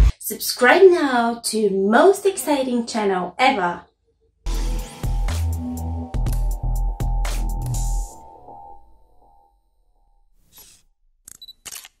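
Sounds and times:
camera shutter clicks: 11.3 - 12.0.

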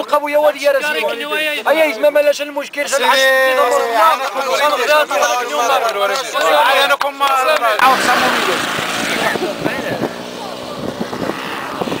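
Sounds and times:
men talking: 0.0 - 12.0
vehicle engine running: 7.8 - 12.0.

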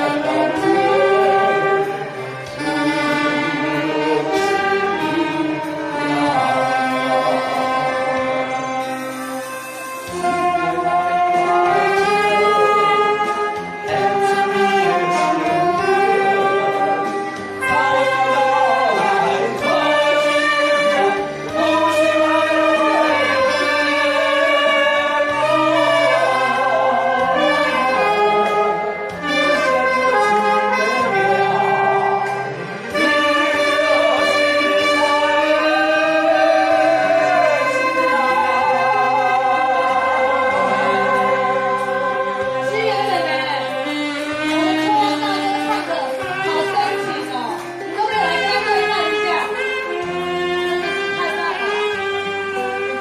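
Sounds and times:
saxophone ensemble playing: 0.0 - 53.0.

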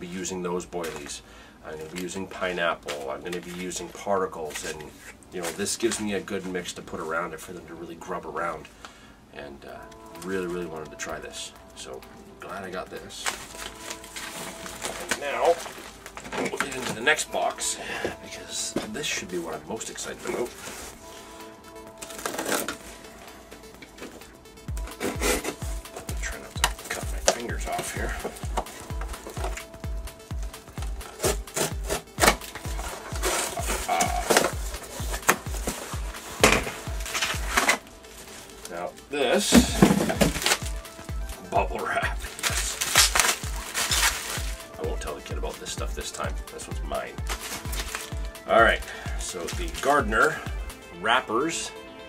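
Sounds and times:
faint background music: 0.0 - 52.0
plastic packaging rustling: 12.5 - 50.4
knife cutting box tape: 31.0 - 32.4.

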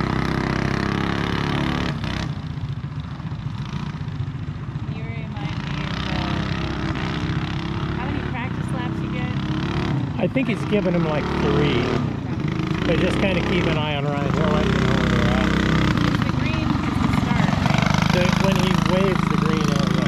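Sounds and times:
small engine running: 0.0 - 20.0.

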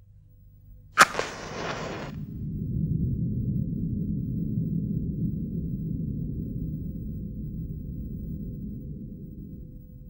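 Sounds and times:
low ambient drone: 0.0 - 10.0
loud hit with hissing tail: 1.0 - 2.2.

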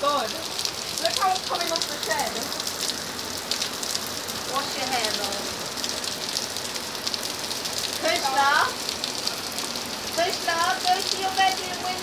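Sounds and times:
heavy rain on paving and roof: 0.0 - 12.0.

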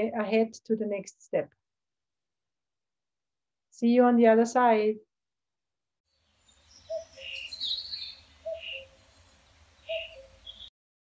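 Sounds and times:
faint outdoor background: 0.0 - 10.7
birds chirping: 6.4 - 10.7.

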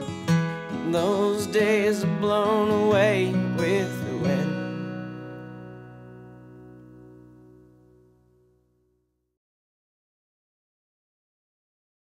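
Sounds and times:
acoustic guitar chord ringing: 0.0 - 9.0
person singing: 0.6 - 4.9.

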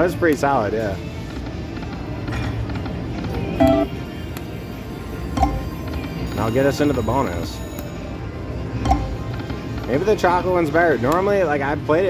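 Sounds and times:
slot machine spin music: 3.3 - 10.4
two-tone chime: 3.6 - 4.0, 4.6 - 7.8.

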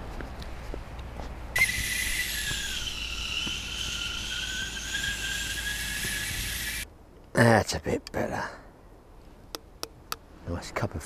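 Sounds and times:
kettle whistling: 1.6 - 6.8.

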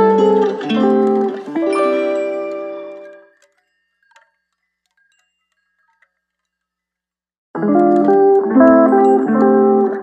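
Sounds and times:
background music ringing notes: 0.0 - 5.2, 7.6 - 10.0
faint chime-like tinkles: 1.6 - 6.9.

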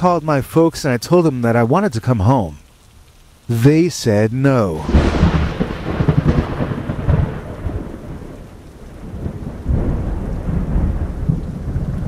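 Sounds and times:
rain: 0.0 - 12.0
rolling thunder: 4.8 - 12.0.

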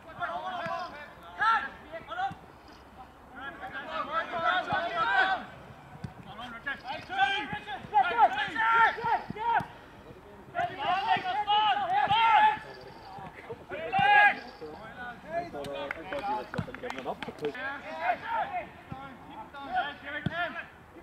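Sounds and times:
players shouting: 0.0 - 2.4, 3.0 - 21.0.

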